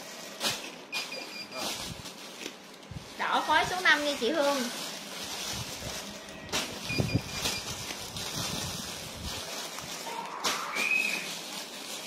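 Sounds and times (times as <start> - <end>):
plastic garment bags crinkling: 0.0 - 12.0
high whistle-like chirp: 10.1 - 11.3.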